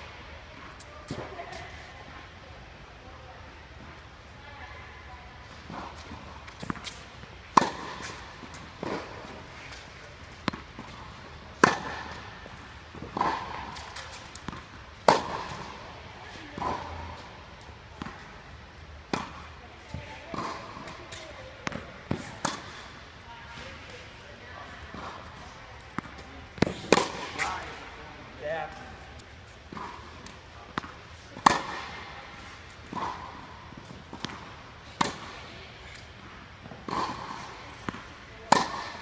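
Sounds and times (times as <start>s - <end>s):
tennis ball bouncing: 5.4s - 39.0s
tennis ball hit by racket: 5.6s - 28.0s, 29.7s - 39.0s.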